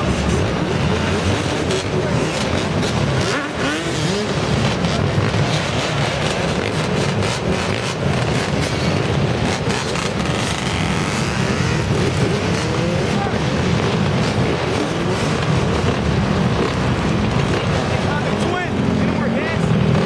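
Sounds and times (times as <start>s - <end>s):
dirt bike engines revving: 0.0s - 20.0s.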